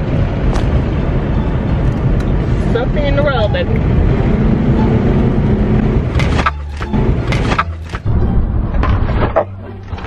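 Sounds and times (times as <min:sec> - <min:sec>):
car cabin road noise: 0:00.0 - 0:10.0
low engine hum: 0:00.0 - 0:10.0.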